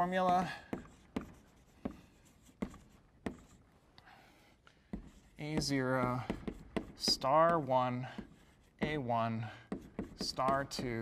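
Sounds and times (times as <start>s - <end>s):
chalk tapping on blackboard: 0.0s - 3.6s, 4.8s - 11.0s
chalk scratching: 0.0s - 3.8s, 4.9s - 11.0s.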